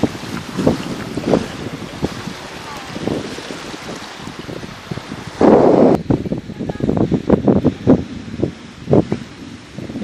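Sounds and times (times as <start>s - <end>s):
small waves washing on shore: 0.0s - 10.0s
wind buffeting microphone: 0.0s - 10.0s.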